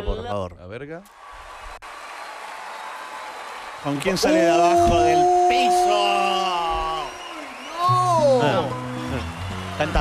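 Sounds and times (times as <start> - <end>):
audience applause: 1.1 - 10.0.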